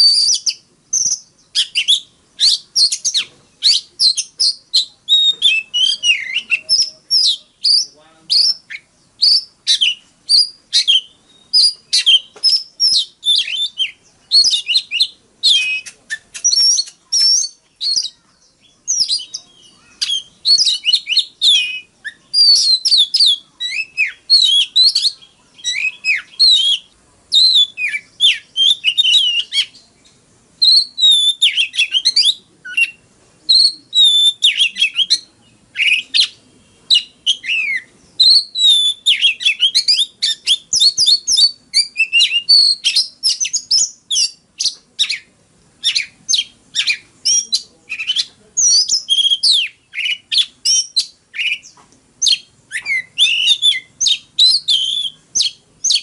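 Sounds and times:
bird singing whistled notes: 0.0 - 56.0.

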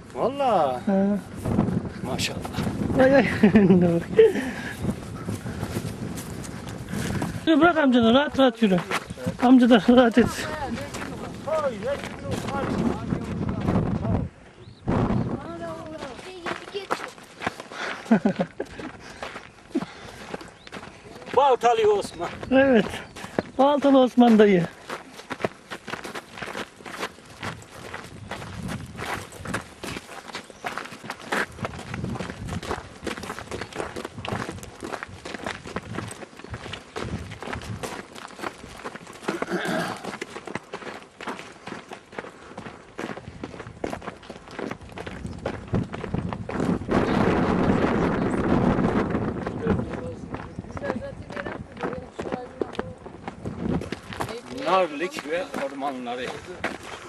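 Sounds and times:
crunching footsteps on rough path: 0.0 - 57.0
person speaking: 7.4 - 14.2.

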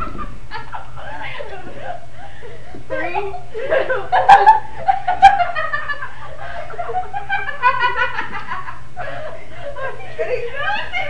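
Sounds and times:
girls laughing and giggling: 0.0 - 11.0.

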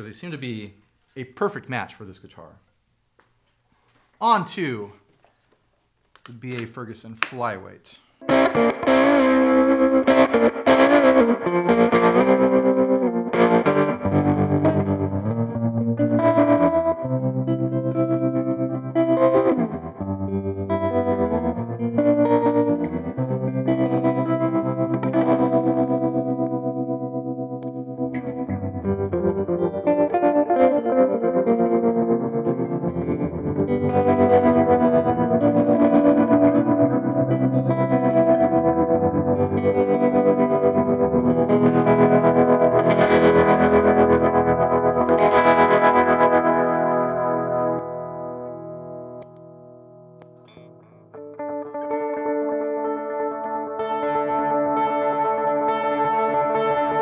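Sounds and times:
electric guitar through effects: 8.2 - 57.0.

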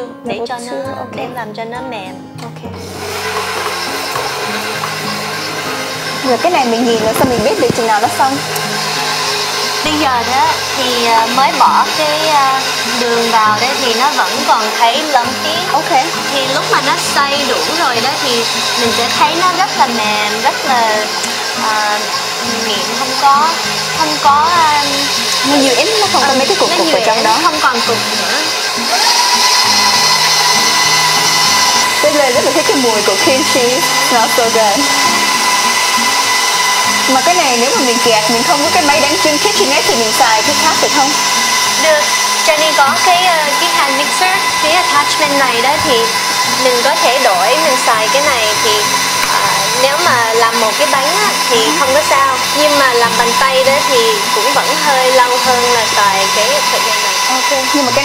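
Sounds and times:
background music: 0.0 - 58.0
stand mixer motor running: 2.7 - 58.0.

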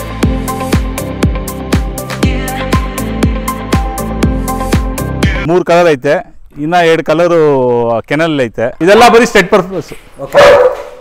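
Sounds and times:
dog barking: 10.3 - 11.0.

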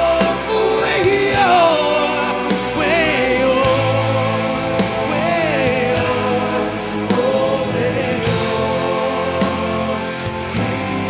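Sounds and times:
instrumental accompaniment: 0.0 - 11.0
man singing into a microphone: 0.0 - 11.0.

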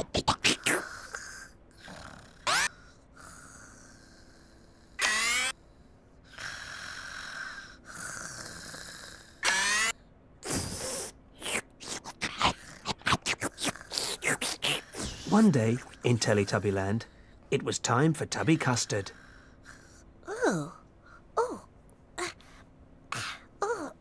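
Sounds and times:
cartoon snoring breaths: 0.4 - 5.0, 6.3 - 9.6, 10.4 - 11.6, 12.3 - 15.3.

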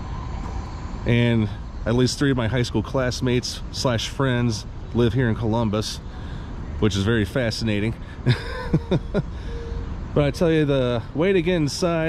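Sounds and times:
city traffic rumble: 0.0 - 12.0
man chuckling: 8.2 - 9.6.

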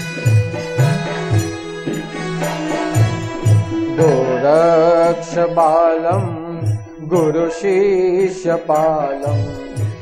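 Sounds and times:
instrumental accompaniment: 0.0 - 10.0
man singing a chant: 2.4 - 10.0.

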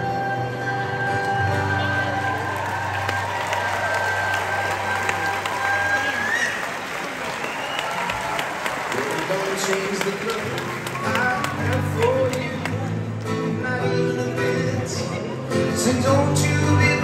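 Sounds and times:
audience applauding and cheering: 0.5 - 13.5.

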